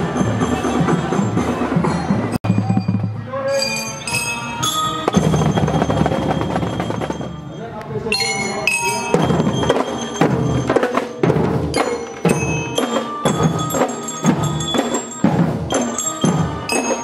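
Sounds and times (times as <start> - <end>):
bell lyre melody: 2.0 - 17.0
snare and bass drums beat: 5.1 - 7.3, 9.2 - 17.0.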